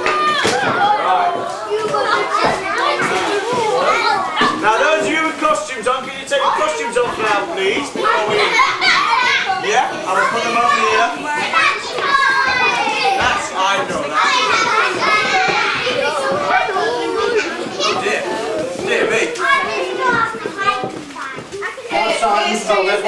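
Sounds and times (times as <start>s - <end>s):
young children chattering: 0.0s - 23.0s.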